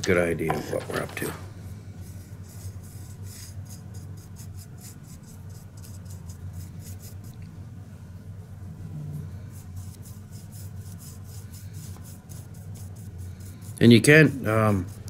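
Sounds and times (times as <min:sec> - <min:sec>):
low steady hum: 0:00.0 - 0:15.0
paintbrush scratching textured surface: 0:02.0 - 0:07.4, 0:09.3 - 0:15.0.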